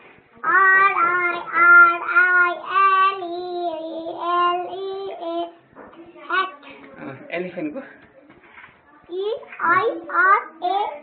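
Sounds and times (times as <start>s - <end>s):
child singing: 0.4s - 5.6s, 9.1s - 11.0s.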